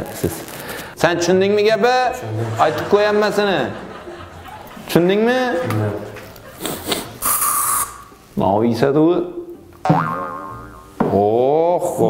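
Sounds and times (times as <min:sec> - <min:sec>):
wobbly boing sound effects: 0:09.8 - 0:11.2.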